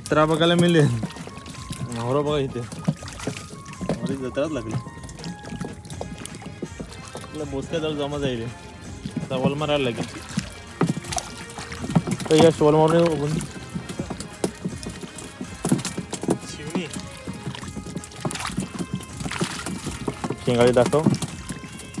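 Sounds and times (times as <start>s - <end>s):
hands splashing in water and mud: 0.0s - 22.0s.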